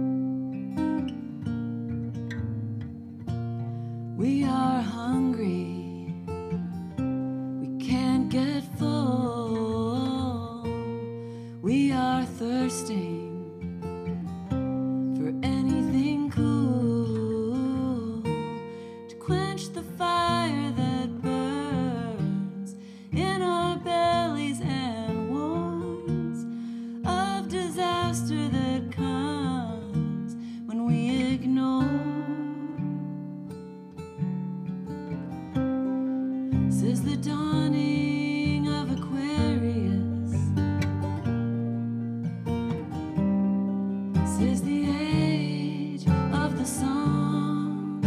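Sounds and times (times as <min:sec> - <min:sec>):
acoustic guitar: 0:00.0 - 0:48.0
woman singing: 0:04.0 - 0:33.7, 0:36.2 - 0:41.2, 0:44.1 - 0:48.0.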